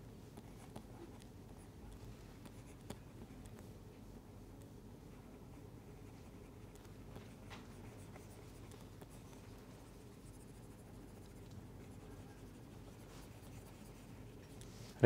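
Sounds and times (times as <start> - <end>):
stylus scratching on drawing tablet: 5.1 - 14.6.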